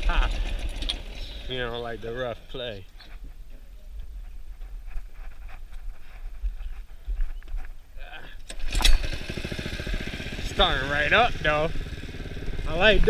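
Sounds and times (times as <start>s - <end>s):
small engine starting and running: 0.0s - 2.0s, 8.4s - 13.0s.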